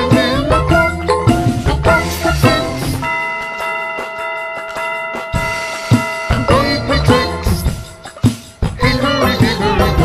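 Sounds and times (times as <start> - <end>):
clock chime bell strike: 3.0 - 8.7.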